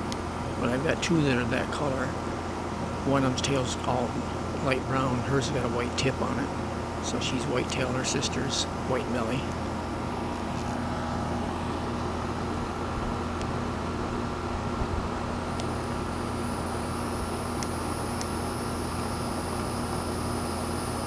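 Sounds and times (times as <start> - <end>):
air conditioner hum and fan: 0.0 - 21.0.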